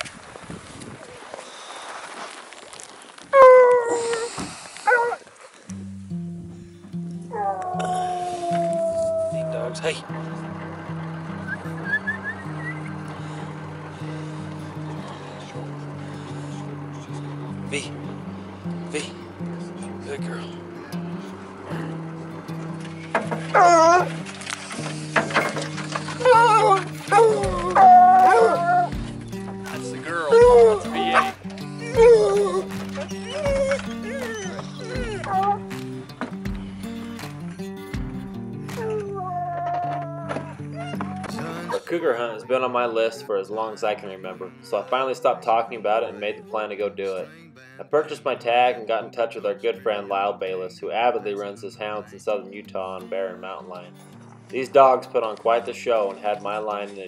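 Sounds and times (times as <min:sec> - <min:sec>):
hound baying: 0:03.3 - 0:05.3, 0:06.1 - 0:43.2
music: 0:05.7 - 0:57.0.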